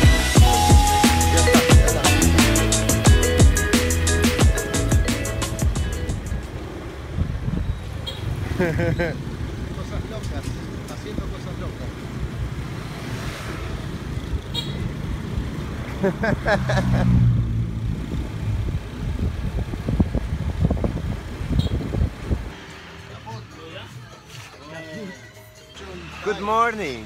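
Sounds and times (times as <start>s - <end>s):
wind rumble: 6.2s - 8.0s, 17.3s - 22.7s.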